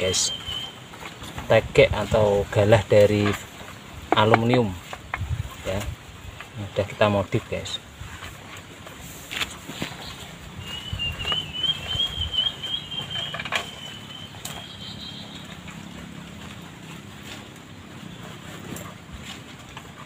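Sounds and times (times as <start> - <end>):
wavering high-pitched call: 0.2 - 0.8, 10.7 - 15.4.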